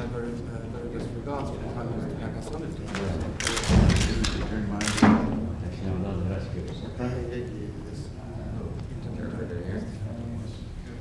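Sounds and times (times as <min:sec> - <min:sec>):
sharp clicks: 0:02.9 - 0:05.2.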